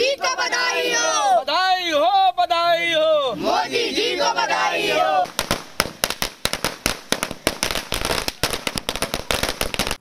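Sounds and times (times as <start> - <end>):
firecrackers cracking: 5.2 - 10.0.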